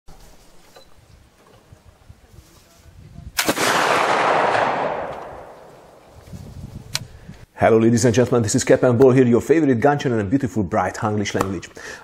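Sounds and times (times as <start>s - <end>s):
rifle shot with rolling report: 3.4s - 6.2s.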